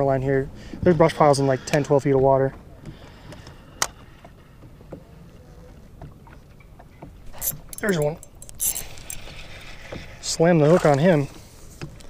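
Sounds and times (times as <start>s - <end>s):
fishing reel clicks: 7.4s - 9.4s.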